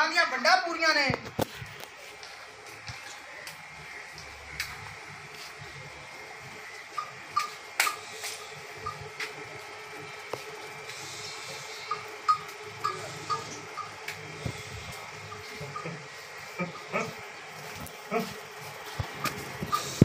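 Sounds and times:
steady low hum: 0:00.0 - 0:20.0
faint chirps and ticks: 0:10.3 - 0:16.0.

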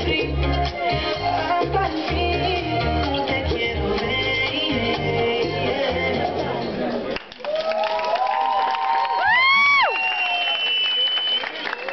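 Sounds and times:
bachata music: 0:00.0 - 0:07.1
audience cheering and clapping: 0:07.2 - 0:11.9
shouted whoops: 0:07.4 - 0:11.9.

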